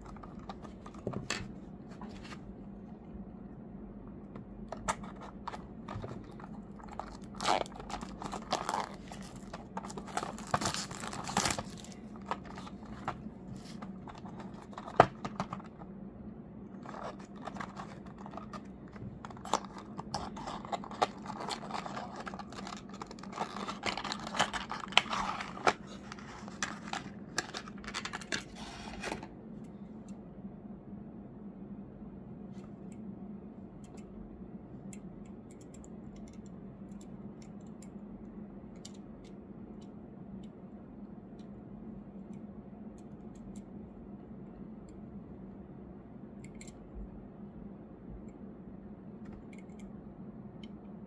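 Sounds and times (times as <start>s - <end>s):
cardboard crinkling and tearing: 5.9s - 15.7s, 16.8s - 29.2s.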